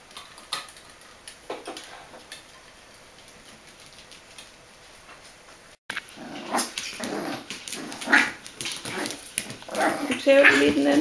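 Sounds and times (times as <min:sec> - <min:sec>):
puppies growling: 0:05.9 - 0:11.0
puppies yapping: 0:06.1 - 0:11.0.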